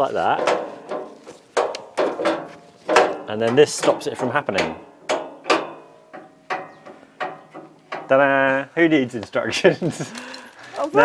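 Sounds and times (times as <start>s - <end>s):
metal parts clacking: 0.0s - 8.2s, 10.0s - 11.0s.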